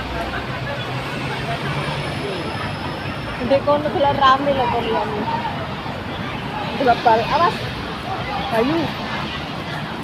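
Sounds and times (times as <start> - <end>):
city traffic engine hum: 0.0 - 10.0
faint voices: 0.0 - 10.0.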